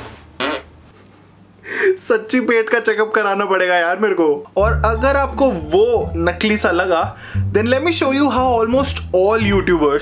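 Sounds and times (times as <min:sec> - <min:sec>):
short fart: 0:00.0 - 0:00.8.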